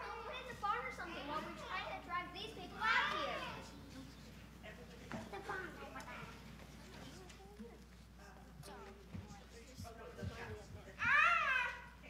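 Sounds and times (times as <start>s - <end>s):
children's voices: 0.0s - 4.5s, 5.1s - 7.9s, 11.0s - 12.0s.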